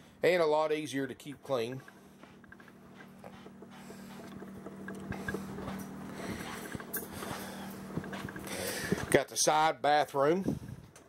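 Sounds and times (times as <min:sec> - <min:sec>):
steady low hum: 0:00.0 - 0:11.0
light footsteps: 0:01.1 - 0:09.2.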